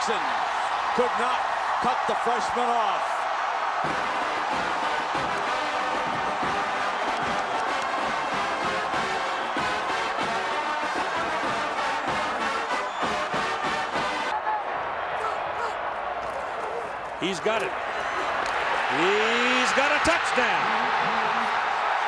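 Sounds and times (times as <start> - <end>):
stadium crowd cheering: 0.0 - 22.0
brass band music: 3.8 - 14.4.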